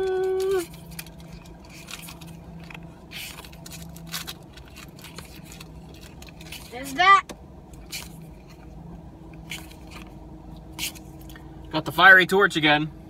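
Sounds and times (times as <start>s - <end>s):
person singing ta-da: 0.0s - 0.6s
low steady hum: 0.0s - 13.0s.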